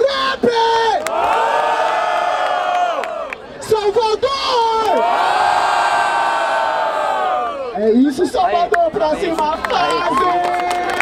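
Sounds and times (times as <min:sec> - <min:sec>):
crowd yelling ohh: 0:04.8 - 0:07.8.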